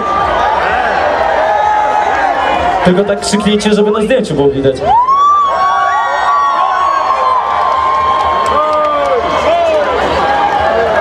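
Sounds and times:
crowd cheers and whoops: 0:00.0 - 0:03.6, 0:04.8 - 0:11.0.

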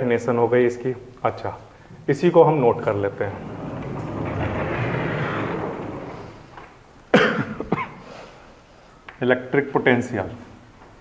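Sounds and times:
short cough: 0:07.1 - 0:08.2.

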